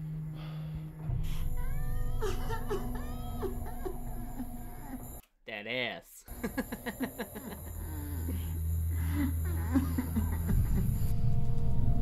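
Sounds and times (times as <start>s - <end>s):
steady low drone: 0.0s - 5.2s, 6.3s - 12.0s
high whimpering sobbing cries: 1.6s - 5.1s.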